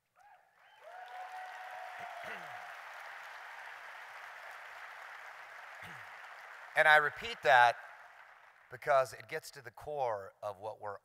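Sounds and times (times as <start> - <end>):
long held cheer: 0.2 - 8.5
audience applause: 0.6 - 9.1.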